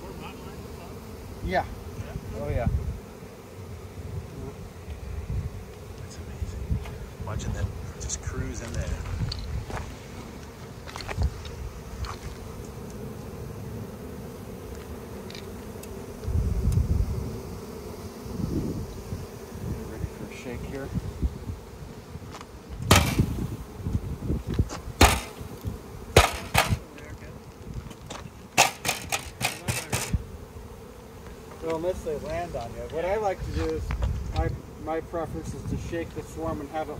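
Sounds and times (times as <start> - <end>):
bees buzzing: 0.0 - 36.9
sharp knocks and clacks: 28.6 - 30.2.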